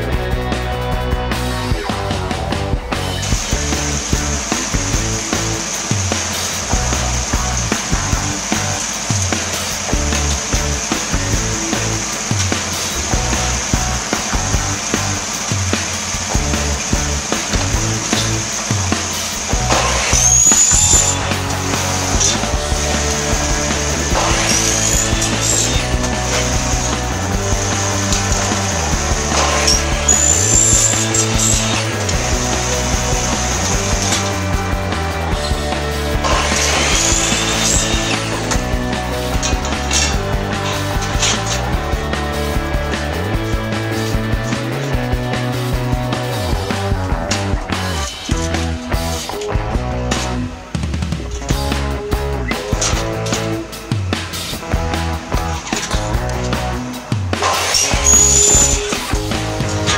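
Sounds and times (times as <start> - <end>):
background music: 0.0 - 59.9
miter saw cutting metal: 3.0 - 49.5, 52.5 - 59.9.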